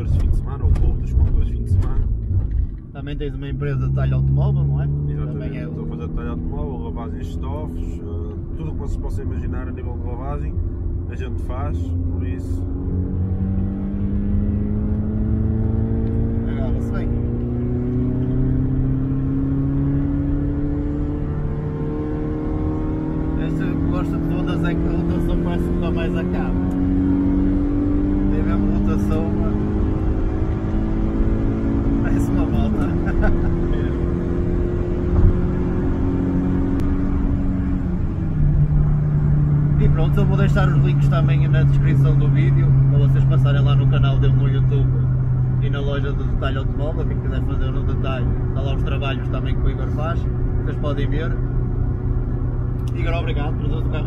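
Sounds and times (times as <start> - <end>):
car engine accelerating: 0.0 - 54.0
road rumble: 0.0 - 54.0.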